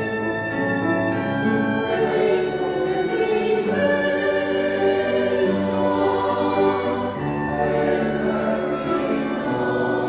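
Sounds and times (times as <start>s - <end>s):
church choir singing: 0.0s - 10.0s.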